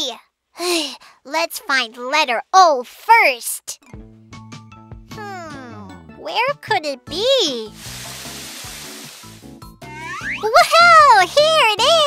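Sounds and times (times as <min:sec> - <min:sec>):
light background music: 0:03.8 - 0:12.0
shower spray hiss: 0:07.6 - 0:09.6.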